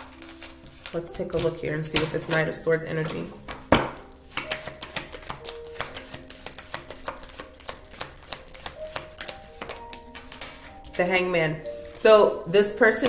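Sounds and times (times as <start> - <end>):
playing cards being shuffled: 0.0 - 11.0.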